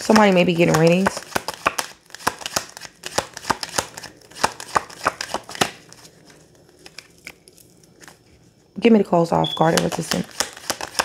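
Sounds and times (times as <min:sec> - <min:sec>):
cards being shuffled: 0:00.0 - 0:08.2, 0:09.6 - 0:11.0.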